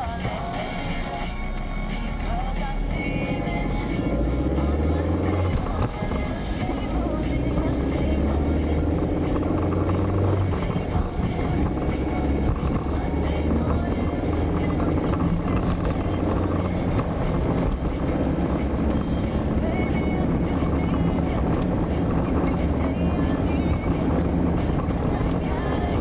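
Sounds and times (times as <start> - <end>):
car engine drone: 0.0 - 26.0
tyre and road rumble: 2.2 - 26.0.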